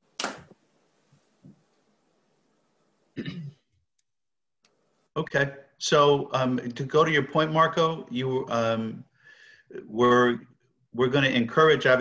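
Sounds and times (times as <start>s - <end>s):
man clearing his throat: 3.2s - 3.7s.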